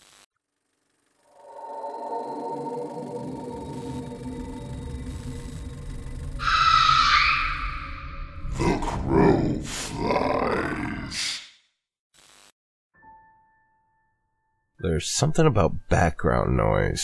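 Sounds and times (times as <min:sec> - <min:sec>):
low dark ambient drone: 0:00.6 - 0:10.8
harsh screech: 0:01.2 - 0:08.8
deep growling echoing sounds: 0:02.4 - 0:11.2.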